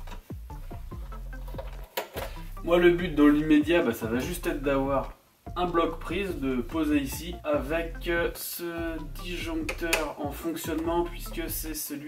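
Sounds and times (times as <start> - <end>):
electronic music: 0.0 - 11.8.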